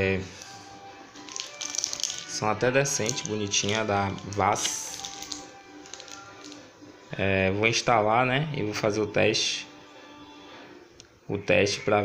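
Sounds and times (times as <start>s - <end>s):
plastic wrap crinkling: 0.3s - 6.7s.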